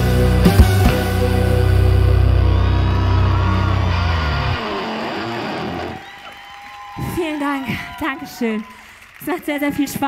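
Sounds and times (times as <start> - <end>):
rock band final chord: 0.0 - 6.0.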